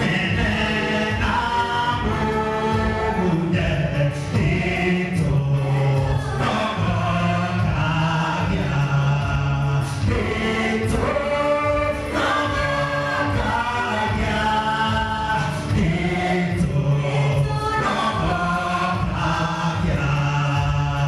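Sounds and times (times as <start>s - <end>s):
man singing into a microphone: 0.0s - 12.3s, 13.4s - 21.0s
group singing a gospel hymn: 0.0s - 21.0s.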